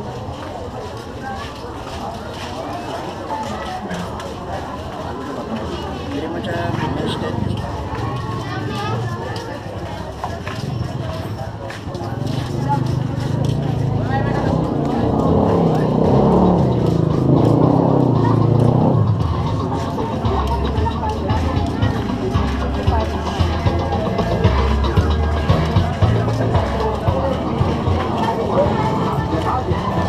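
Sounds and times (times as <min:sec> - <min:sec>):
people talking: 0:00.0 - 0:30.0
motorcycle engine passing: 0:10.6 - 0:30.0
music with steady bass line: 0:13.7 - 0:30.0.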